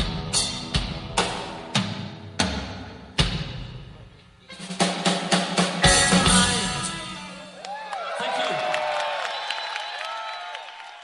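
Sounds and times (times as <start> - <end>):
drum and cymbal hits: 0.0 - 7.5
rock band music: 0.0 - 7.6.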